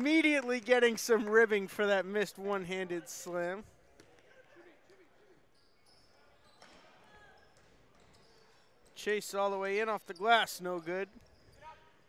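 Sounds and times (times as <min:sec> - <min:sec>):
sneaker squeaks: 0:03.8 - 0:12.0
basketball bouncing on court: 0:05.8 - 0:09.0.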